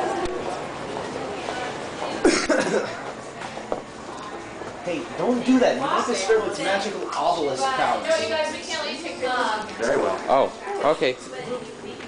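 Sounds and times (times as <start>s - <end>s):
murmur of voices: 0.0s - 12.0s
person coughing: 2.2s - 3.0s.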